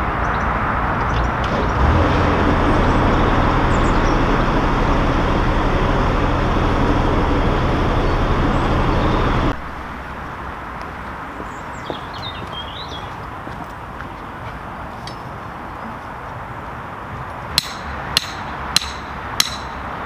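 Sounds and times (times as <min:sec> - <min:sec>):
diesel boat engine running: 0:01.1 - 0:10.6.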